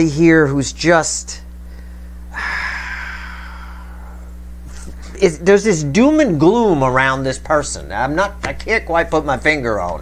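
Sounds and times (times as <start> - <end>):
man sighing: 2.3 - 4.4.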